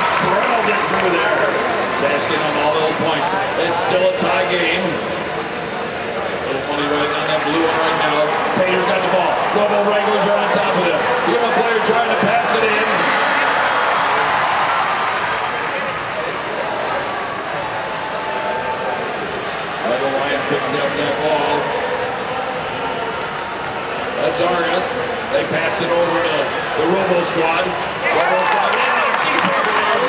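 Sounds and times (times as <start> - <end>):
man speaking over public-address system: 0.0 - 5.2, 6.3 - 13.5, 19.8 - 22.4, 24.2 - 30.0
crowd noise: 0.0 - 30.0.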